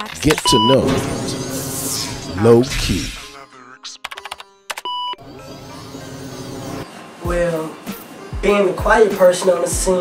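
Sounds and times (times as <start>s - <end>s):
high electronic beep: 0.3s - 2.5s.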